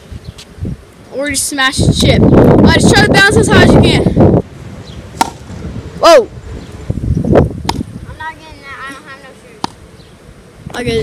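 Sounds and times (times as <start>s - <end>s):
ball smacking on asphalt: 5.2s - 5.5s, 7.6s - 7.9s, 9.6s - 9.8s.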